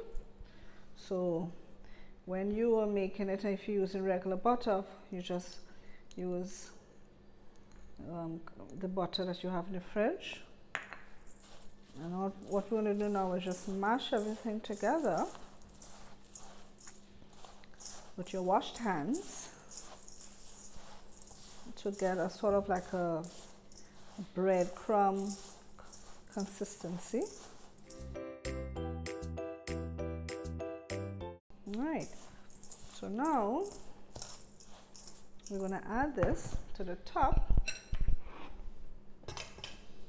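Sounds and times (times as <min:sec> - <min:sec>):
hands rubbing crumbly mix in bowl: 0:11.1 - 0:28.2, 0:31.6 - 0:36.6.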